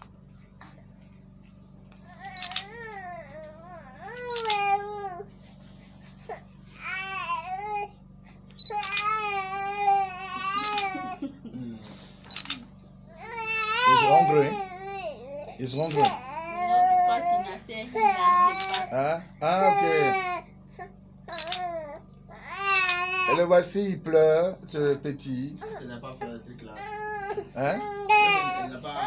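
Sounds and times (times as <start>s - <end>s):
low electrical hum: 0.0s - 29.0s
baby crying: 2.1s - 5.3s, 6.3s - 7.9s, 8.7s - 11.3s, 13.1s - 23.5s, 25.6s - 29.0s.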